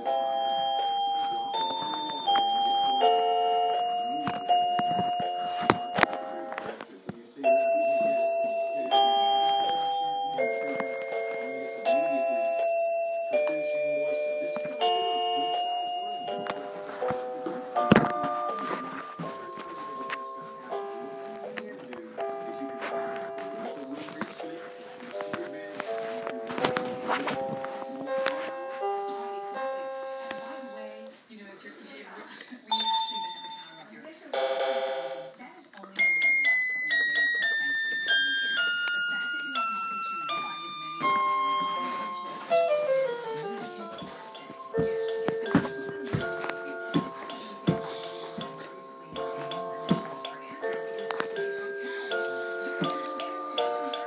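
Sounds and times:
toy electronic keyboard notes: 0:00.0 - 0:31.1, 0:34.3 - 0:54.0.

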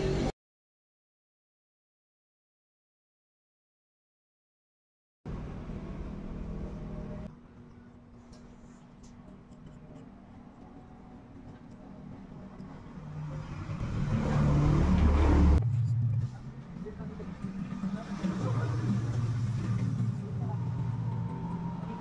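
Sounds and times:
low engine hum: 0:05.3 - 0:07.4, 0:10.6 - 0:22.0
vehicle engine revving: 0:13.0 - 0:22.0.

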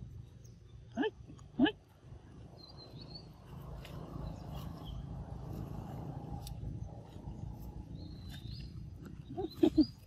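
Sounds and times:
monkeys calling: 0:09.2 - 0:10.0.

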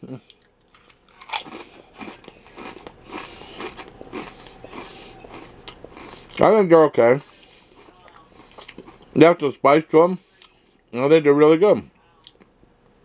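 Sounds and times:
crisp crunching: 0:00.4 - 0:06.6.

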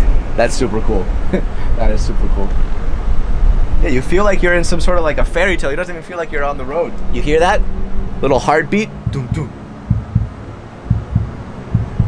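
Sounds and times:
low double heartbeat thump: 0:09.0 - 0:12.0.

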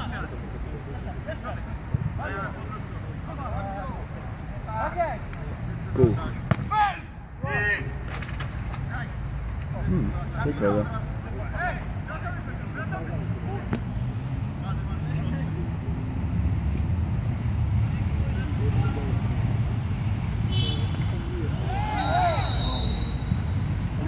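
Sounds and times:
distant shouts of players: 0:05.8 - 0:08.0, 0:20.4 - 0:23.6.

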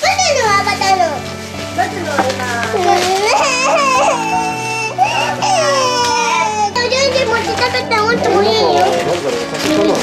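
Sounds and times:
young children chattering: 0:02.1 - 0:10.0.

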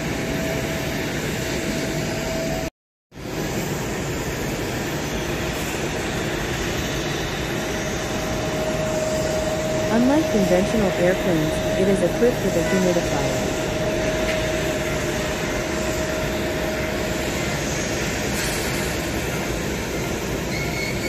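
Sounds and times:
airliner engines rumbling: 0:00.0 - 0:21.0.

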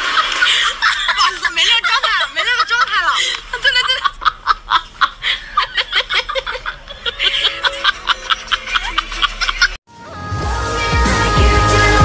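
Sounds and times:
high-pitched giggling laughter: 0:00.0 - 0:09.8.

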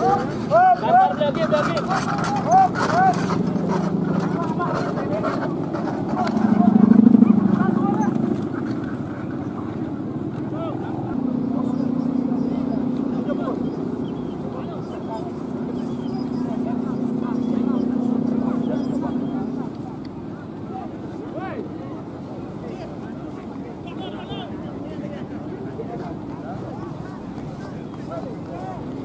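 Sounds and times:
kite hummer droning: 0:00.0 - 0:29.0.

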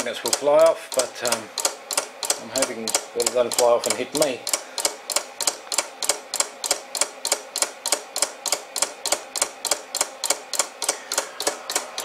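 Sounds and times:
motor switch clicking: 0:00.2 - 0:12.0.

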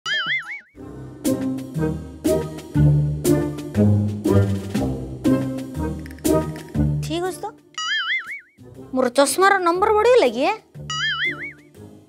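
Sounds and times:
cartoon wobbling warbling tone: 0:00.0 - 0:00.7, 0:07.8 - 0:08.5, 0:10.9 - 0:11.6.

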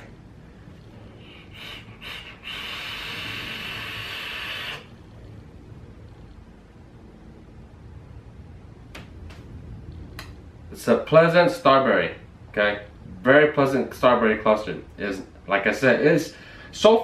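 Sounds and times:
vape hiss of air drawn: 0:01.4 - 0:04.9.

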